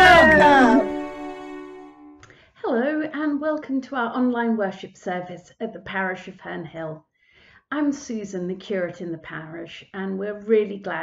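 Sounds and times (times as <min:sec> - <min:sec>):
voices gliding up and down: 0:00.0 - 0:01.0
ringing final chord: 0:00.0 - 0:02.2
song ending: 0:00.0 - 0:02.2.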